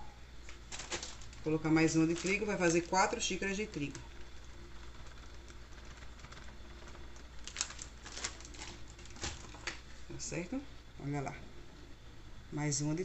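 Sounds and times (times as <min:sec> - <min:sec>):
low steady hum: 0:00.0 - 0:13.0
plastic bag crinkling: 0:00.4 - 0:10.0.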